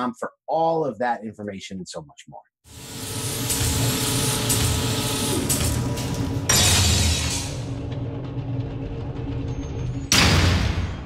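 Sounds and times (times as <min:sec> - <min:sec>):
low mechanical drone: 0:03.0 - 0:11.0.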